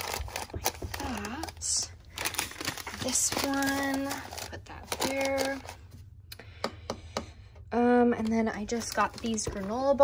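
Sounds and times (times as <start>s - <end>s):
paper packets rustling: 0.0s - 5.8s, 8.6s - 10.0s.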